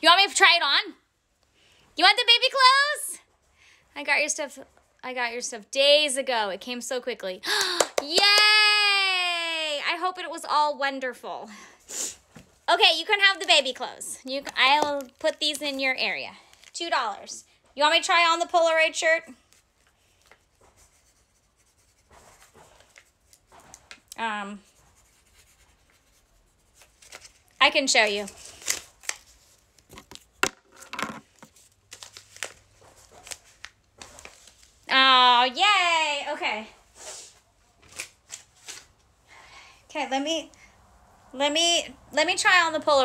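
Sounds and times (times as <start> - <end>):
pencil scratching on paper: 20.5 - 23.8, 24.6 - 26.8.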